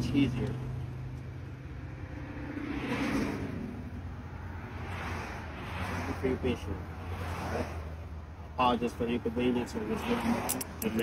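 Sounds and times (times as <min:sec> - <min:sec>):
cars passing: 0:00.0 - 0:11.0.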